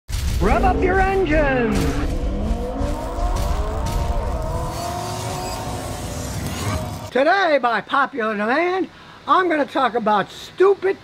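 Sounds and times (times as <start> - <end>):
car engine revving: 0.5 - 7.1.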